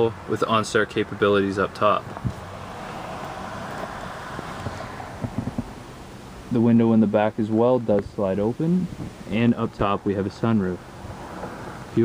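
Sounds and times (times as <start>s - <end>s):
background hiss in truck cab: 0.0s - 12.0s.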